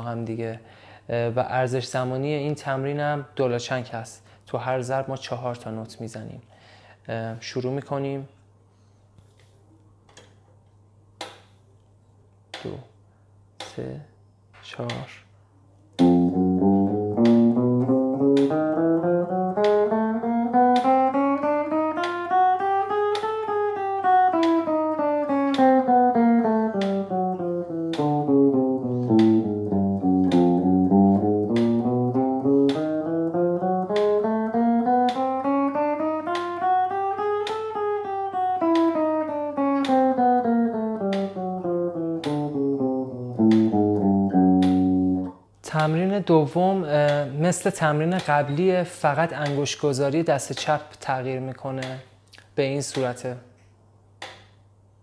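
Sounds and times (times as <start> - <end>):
electric guitar exercise notes: 16.0 - 45.4
metronome ticking: 16.0 - 45.9.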